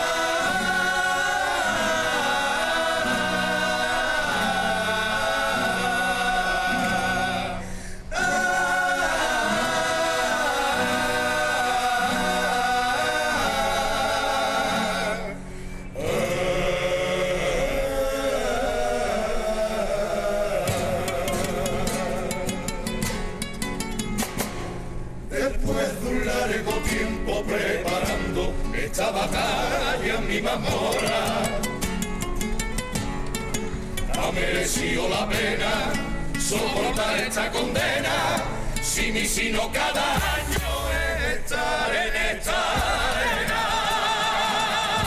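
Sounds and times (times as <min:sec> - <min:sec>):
fast rhythmic guitar strumming: 0:00.0 - 0:16.3, 0:20.6 - 0:45.0
choir singing in harmony: 0:00.0 - 0:22.8, 0:25.3 - 0:31.8, 0:34.1 - 0:45.0
guitar: 0:00.0 - 0:45.0.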